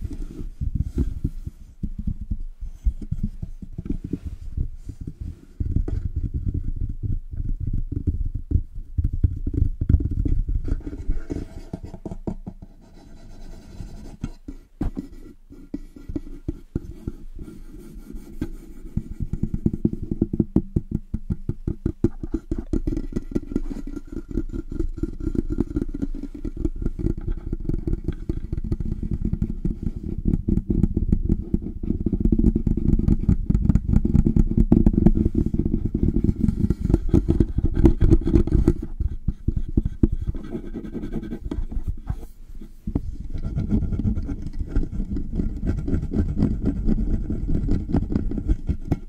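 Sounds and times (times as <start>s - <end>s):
hands rubbing microphone windscreen: 0.0s - 49.0s.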